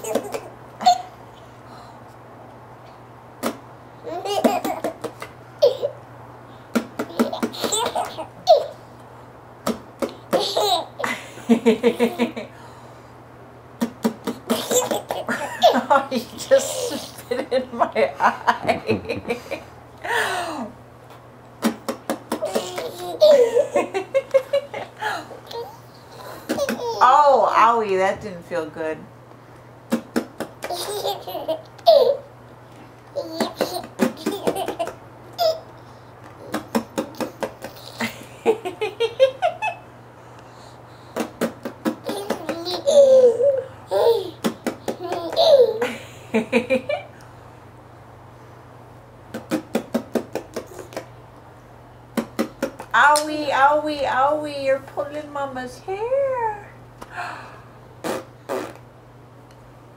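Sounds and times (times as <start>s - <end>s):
baby giggling: 0.0s - 1.1s, 4.0s - 6.0s, 6.8s - 8.8s, 9.7s - 12.5s, 13.8s - 17.6s, 21.6s - 27.1s, 29.9s - 32.3s, 33.1s - 35.7s, 36.4s - 39.8s, 41.2s - 46.0s.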